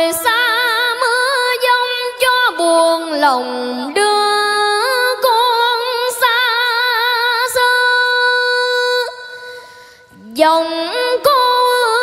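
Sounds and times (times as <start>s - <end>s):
boy singing: 0.0s - 9.5s, 10.2s - 12.0s.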